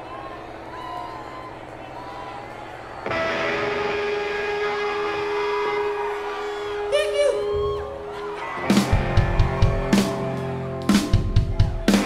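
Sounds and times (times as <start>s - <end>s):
distorted electric guitars chord: 3.0s - 6.9s, 8.4s - 12.0s.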